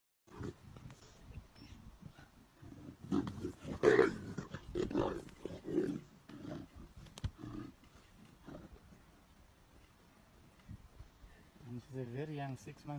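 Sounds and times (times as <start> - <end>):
leopards fighting and calling: 0.3 - 11.6.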